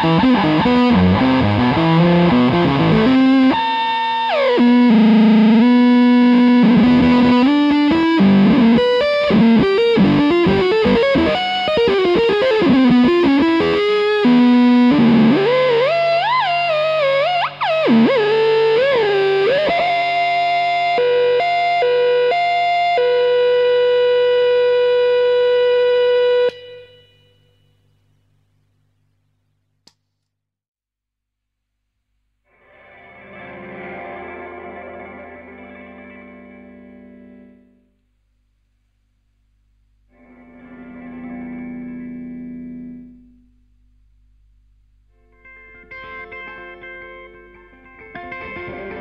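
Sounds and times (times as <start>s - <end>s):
distorted electric guitar: 0.0s - 27.7s, 32.5s - 38.0s, 40.1s - 43.6s, 45.1s - 49.0s.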